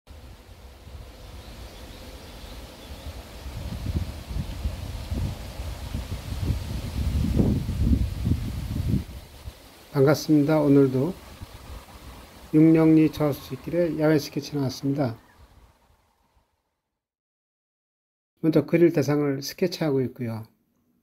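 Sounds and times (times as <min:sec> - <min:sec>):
leaves rustling: 0:00.1 - 0:16.4
wind gusting over microphone: 0:00.2 - 0:16.2.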